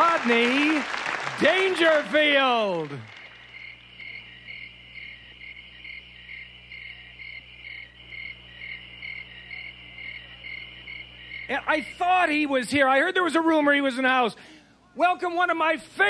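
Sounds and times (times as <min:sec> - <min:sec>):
crickets chirping: 0:00.9 - 0:13.4.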